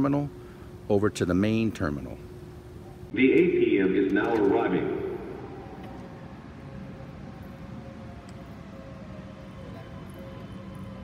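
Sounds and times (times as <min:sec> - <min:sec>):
train running with faint whine: 0:02.4 - 0:11.0.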